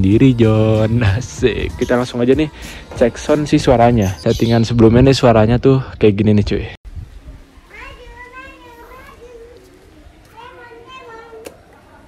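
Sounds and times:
distant children calling: 0:07.4 - 0:12.0.

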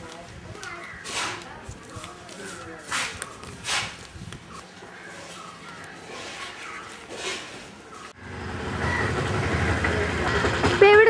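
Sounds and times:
street noise: 0:00.0 - 0:11.0
vehicle engine rumbling: 0:07.7 - 0:11.0.

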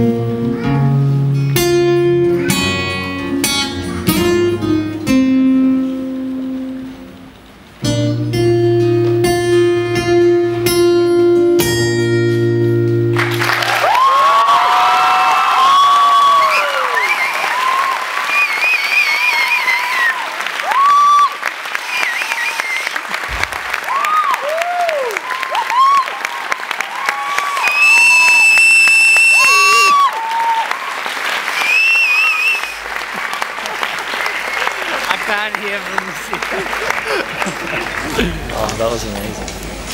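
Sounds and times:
acoustic guitar chords: 0:00.0 - 0:13.4
audience applause: 0:13.1 - 0:39.9
cheering and loud whistles: 0:13.6 - 0:23.2, 0:23.8 - 0:33.0, 0:34.1 - 0:35.0.

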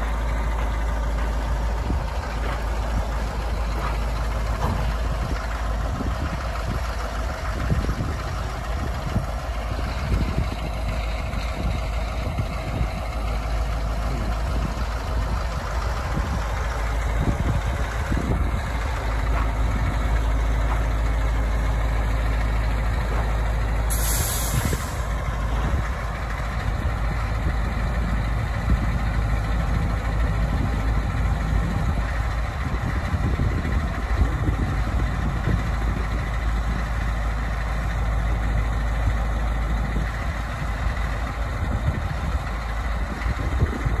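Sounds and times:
diesel engine running: 0:00.0 - 0:44.0
air brakes hissing: 0:23.9 - 0:25.2.

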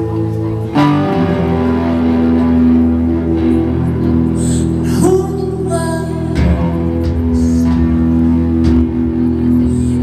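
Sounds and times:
electric guitar: 0:00.0 - 0:10.0
woman singing: 0:04.4 - 0:08.3.

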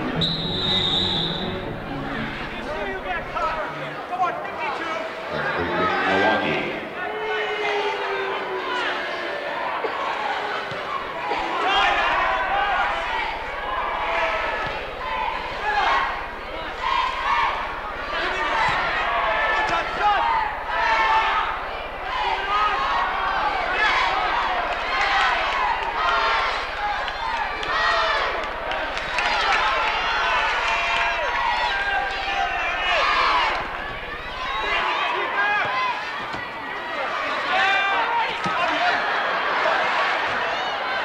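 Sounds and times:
low steady hum: 0:11.0 - 0:34.8.

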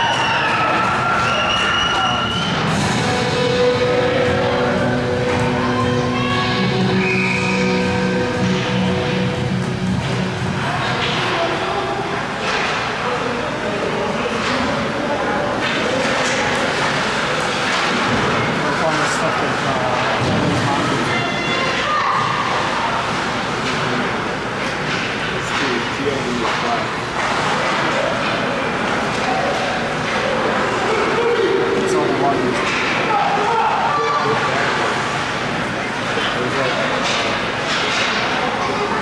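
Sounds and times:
spectators chattering: 0:00.0 - 0:39.0
arena music: 0:02.3 - 0:10.7
sharp knocks of sticks and puck: 0:36.9 - 0:38.3.

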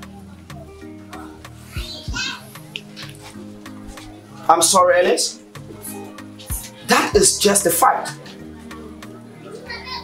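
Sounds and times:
children playing: 0:00.0 - 0:10.0
soft background music: 0:00.0 - 0:10.0.

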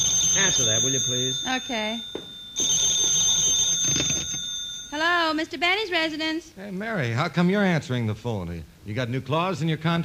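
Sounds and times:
telephone bell ringing: 0:00.0 - 0:05.4.

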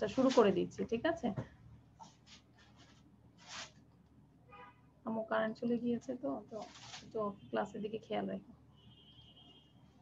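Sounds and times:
woman speaking: 0:00.0 - 0:01.5, 0:05.1 - 0:08.5.

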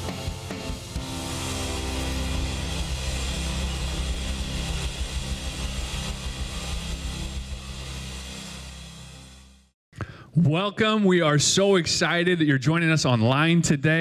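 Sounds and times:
band's final chord ringing: 0:00.0 - 0:09.3
low bass notes: 0:00.0 - 0:09.7
cymbal hiss: 0:00.0 - 0:09.8.

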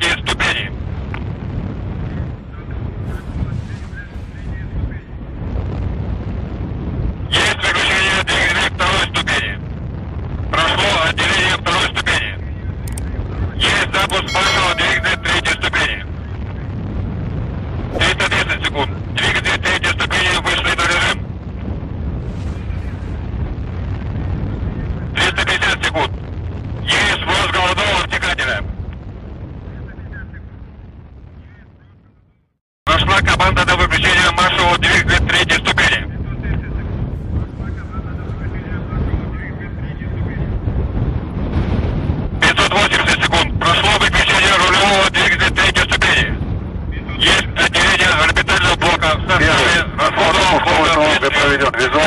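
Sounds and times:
voice calls over radio: 0:00.0 - 0:00.8, 0:07.3 - 0:09.6, 0:10.5 - 0:16.2, 0:18.0 - 0:21.2, 0:25.0 - 0:26.2, 0:26.8 - 0:28.7, 0:32.9 - 0:37.0, 0:42.4 - 0:46.4, 0:47.0 - 0:52.0
steady low rumbling: 0:00.0 - 0:52.0.

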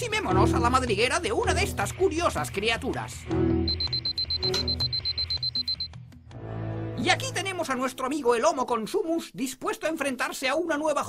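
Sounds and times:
background music: 0:00.0 - 0:09.0
alarm clock beeping: 0:03.6 - 0:06.0.

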